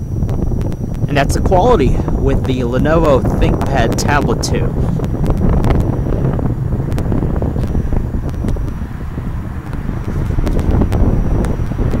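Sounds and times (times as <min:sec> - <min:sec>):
wind buffeting microphone: 0:00.0 - 0:12.0
scattered clicks: 0:09.6 - 0:12.0.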